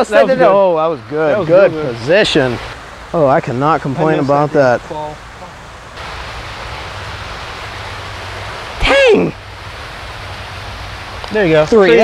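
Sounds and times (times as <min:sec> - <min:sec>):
steady rushing outdoor noise: 0:00.0 - 0:12.0.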